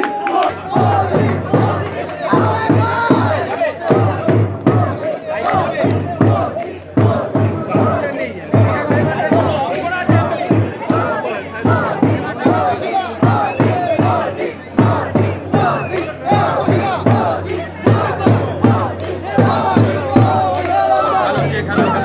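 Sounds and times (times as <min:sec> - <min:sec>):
crowd shouting and cheering: 0:00.0 - 0:22.0
drum beaten in steady rhythm: 0:00.4 - 0:22.0.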